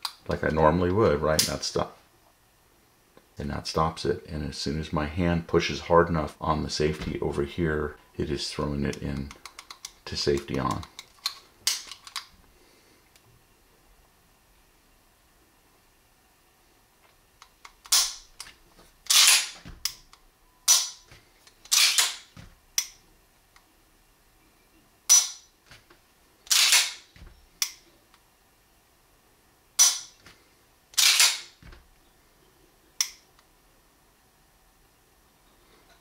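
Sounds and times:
pistol safety clicking: 20.7s - 21.0s, 26.5s - 27.0s, 29.8s - 30.2s, 31.0s - 31.5s.

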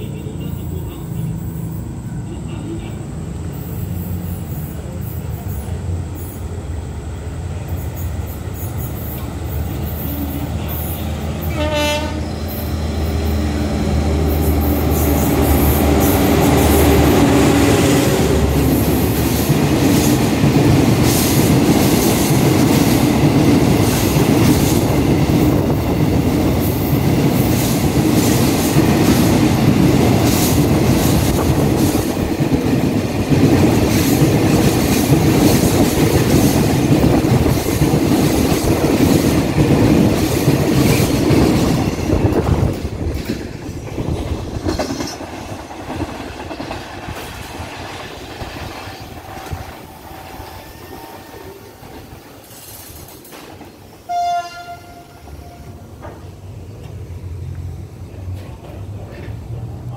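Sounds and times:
diesel locomotive engine: 0.0s - 59.9s
train wheels clattering over rail joints: 18.5s - 49.7s.

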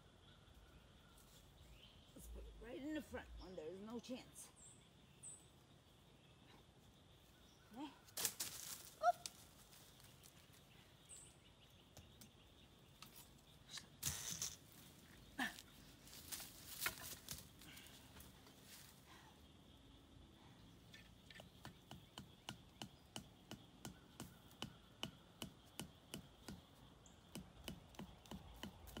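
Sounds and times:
rustling of dry leaves and sticks: 6.6s - 19.4s.

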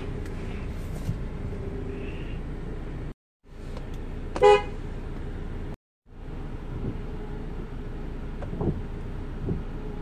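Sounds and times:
steady low rumble: 0.0s - 10.0s
van horn toot: 4.3s - 4.9s.

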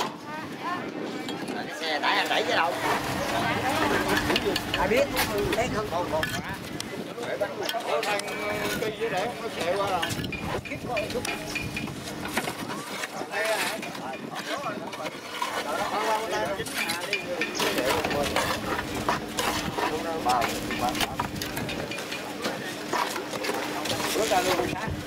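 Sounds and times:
people talking in background: 0.0s - 25.0s.

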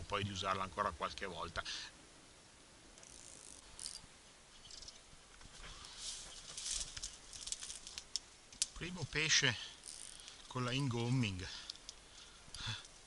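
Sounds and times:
dry grass and twigs rustling: 3.0s - 13.0s
light clicks: 11.6s - 13.0s.

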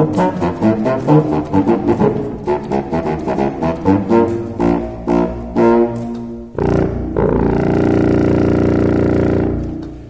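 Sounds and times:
contrabassoon low notes: 0.0s - 10.0s.

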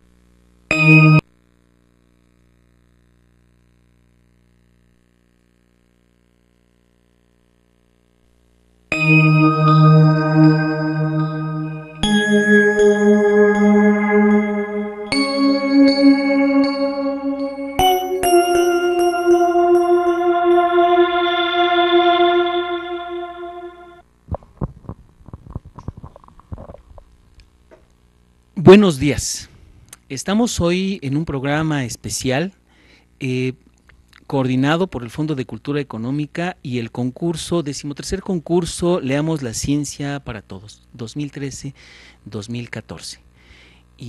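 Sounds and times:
station ident music: 0.7s - 1.2s, 8.9s - 24.0s
metallic bell-like strike ringing: 8.9s - 24.0s.

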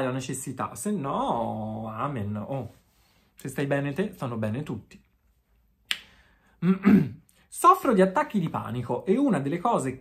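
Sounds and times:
man's voice: 0.0s - 2.8s, 3.4s - 5.0s, 7.5s - 10.0s.

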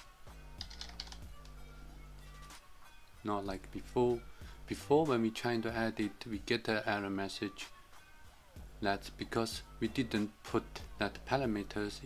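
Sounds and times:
quiet background music: 0.0s - 12.0s
computer keyboard typing: 0.6s - 1.5s.

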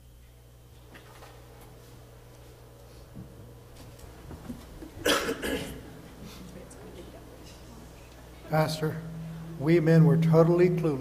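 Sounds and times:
person coughing: 5.0s - 6.0s.

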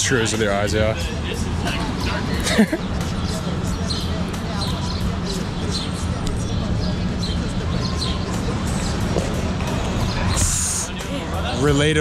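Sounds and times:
faint talk: 0.0s - 12.0s
person laughing: 2.4s - 2.8s.

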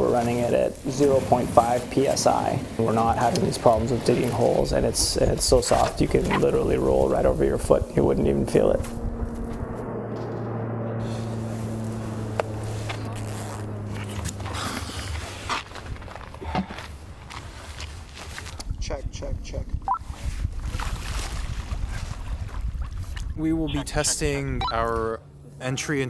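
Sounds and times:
airplane flying overhead: 0.0s - 18.3s, 22.4s - 26.0s.

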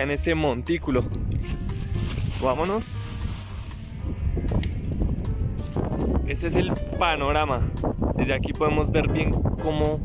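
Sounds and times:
faint background music: 0.0s - 10.0s
wind rumbling on microphone: 0.4s - 10.0s
footsteps crunching on crushed stone: 1.4s - 6.2s.

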